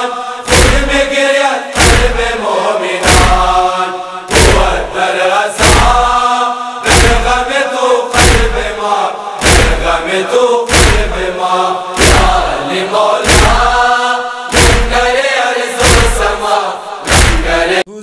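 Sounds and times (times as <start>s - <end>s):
crowd of men chanting: 0.0s - 17.9s
chest-beating slaps: 0.5s - 17.8s.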